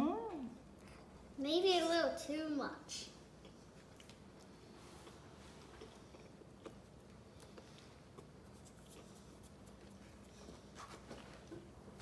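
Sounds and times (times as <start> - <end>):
person chewing: 3.4 - 12.0.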